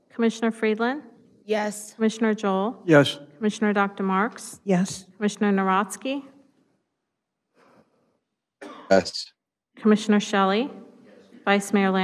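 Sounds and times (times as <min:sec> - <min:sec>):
person speaking: 0:02.9 - 0:03.2, 0:04.0 - 0:05.0, 0:08.9 - 0:09.3
loud cough: 0:08.6 - 0:09.1.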